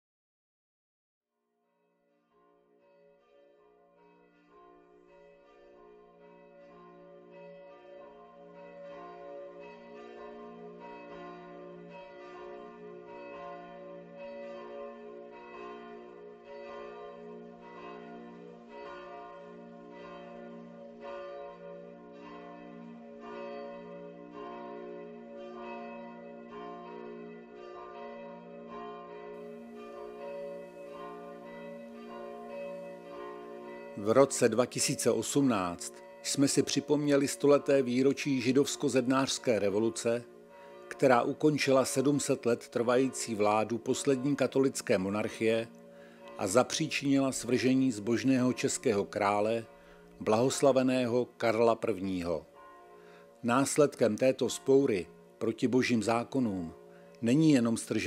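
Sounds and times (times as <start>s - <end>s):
church bells pealing: 2.8s - 58.0s.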